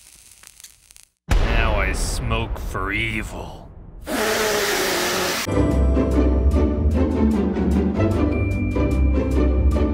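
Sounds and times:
breathy hiss of blowing: 0:04.1 - 0:05.5.

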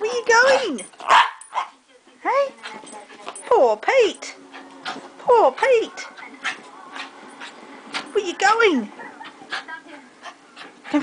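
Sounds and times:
small dogs playing rough: 0:02.5 - 0:11.0.

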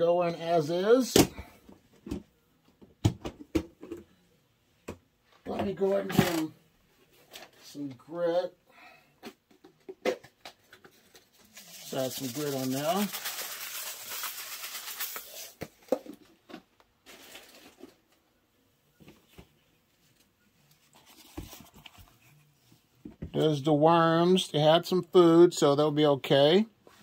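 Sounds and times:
newspaper crinkling: 0:10.9 - 0:15.6.

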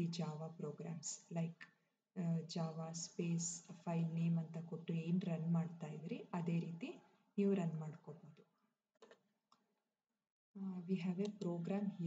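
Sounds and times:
woman speaking: 0:00.0 - 0:01.6, 0:02.2 - 0:08.4, 0:10.6 - 0:12.0.

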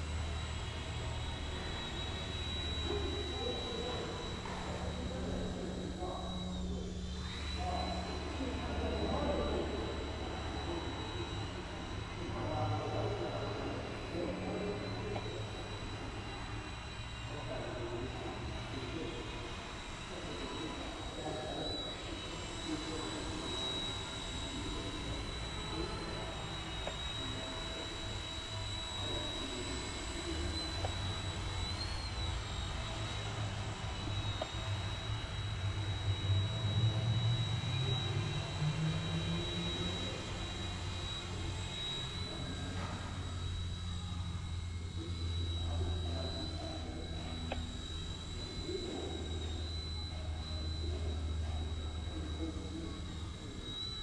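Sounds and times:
high-pitched motor whine: 0:00.0 - 0:54.0
low rotor hum: 0:00.0 - 0:54.0.

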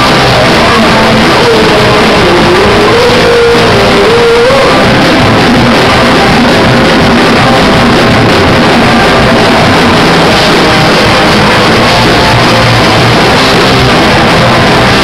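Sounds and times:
bass guitar: 0:00.0 - 0:15.0
distorted electric guitars: 0:00.0 - 0:15.0
drum kit: 0:00.0 - 0:15.0.

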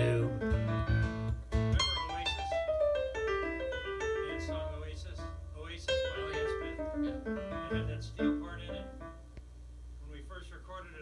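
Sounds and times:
piano descending run: 0:00.0 - 0:09.3.

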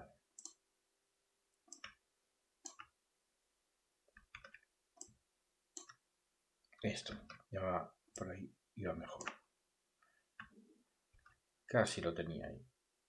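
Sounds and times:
computer mouse clicking: 0:00.4 - 0:00.6, 0:01.7 - 0:02.0, 0:02.6 - 0:03.0, 0:04.1 - 0:05.2, 0:05.8 - 0:06.0, 0:09.2 - 0:09.4.

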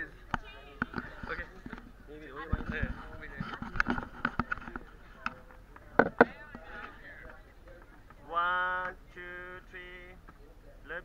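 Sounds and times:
people talking and laughing: 0:00.0 - 0:11.0.

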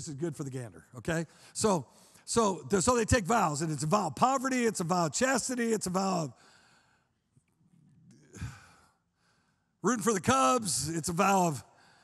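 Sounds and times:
man speaking softly: 0:00.0 - 0:06.3.

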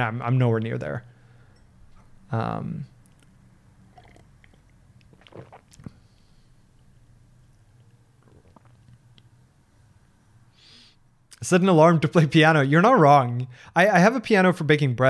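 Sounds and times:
low steady hum: 0:00.0 - 0:15.0
person swallowing: 0:04.0 - 0:06.0, 0:08.2 - 0:09.1.

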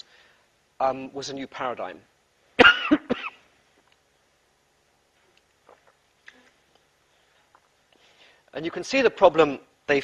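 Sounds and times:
man coughing: 0:02.6 - 0:03.5.

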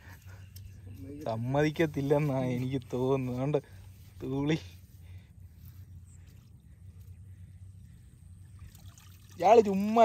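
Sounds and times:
steady low hum: 0:00.0 - 0:10.0
net hauled from water dripping: 0:08.4 - 0:10.0.

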